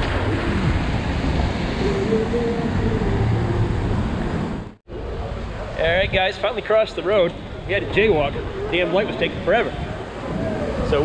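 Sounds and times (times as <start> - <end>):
cars driving on wet pavement: 0.0 - 4.8
wind rumble on microphone: 0.0 - 6.3, 7.4 - 11.0.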